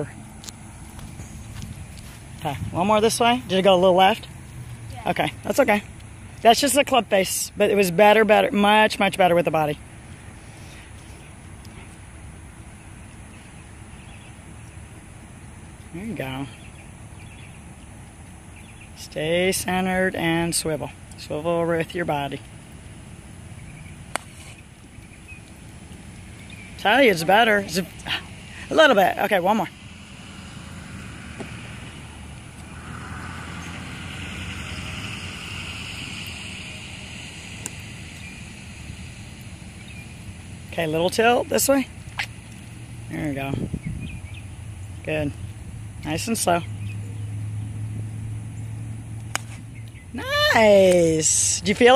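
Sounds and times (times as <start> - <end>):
low hum: 0.0 - 51.9
outdoor background noise: 0.0 - 51.9.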